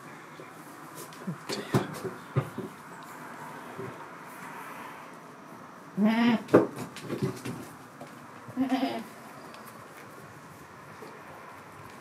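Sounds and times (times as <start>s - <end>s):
goat bleating: 6.0s - 6.5s, 8.5s - 9.2s.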